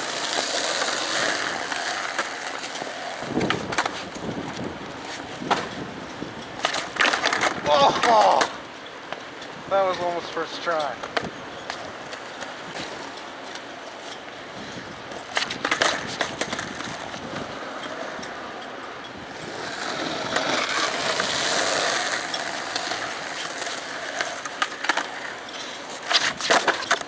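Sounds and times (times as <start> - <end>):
skateboard clattering on ground: 0.0 - 9.3, 10.7 - 18.6, 19.2 - 27.0
skateboard wheels rolling on concrete: 0.0 - 27.0.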